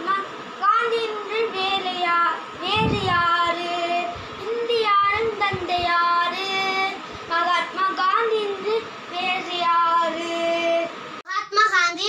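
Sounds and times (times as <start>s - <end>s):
boy singing: 0.0s - 11.0s.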